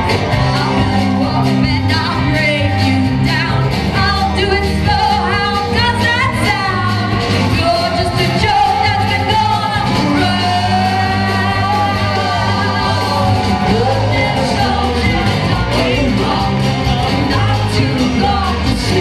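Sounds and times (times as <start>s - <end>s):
live rock band: 0.0s - 19.0s
person singing: 0.0s - 19.0s.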